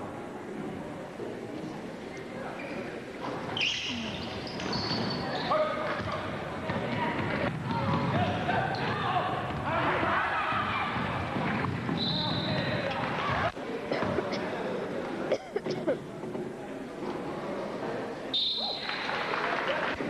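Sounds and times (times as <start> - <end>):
crowd voices: 0.0 - 20.0
short high squeaks: 3.6 - 5.5.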